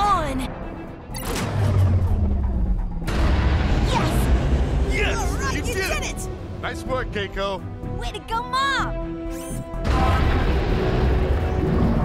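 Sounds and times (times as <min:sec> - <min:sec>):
dramatic music: 0:00.0 - 0:12.0.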